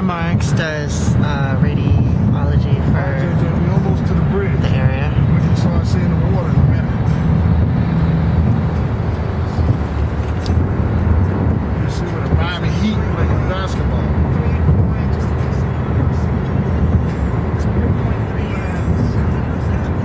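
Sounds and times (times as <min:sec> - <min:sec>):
car road noise rumble: 0:00.0 - 0:20.0.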